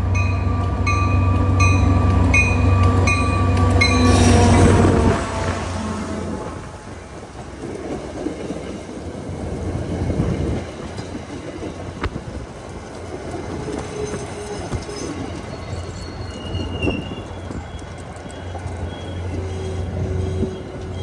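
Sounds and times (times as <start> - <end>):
rail joint clicks: 0.0 - 5.5, 6.4 - 21.0
train wheels rumbling on rails: 0.0 - 21.0
faint wheel squeal: 13.7 - 21.0.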